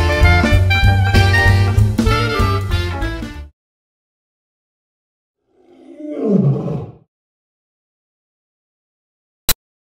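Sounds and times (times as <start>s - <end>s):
loud roar falling in pitch: 5.5s - 7.1s.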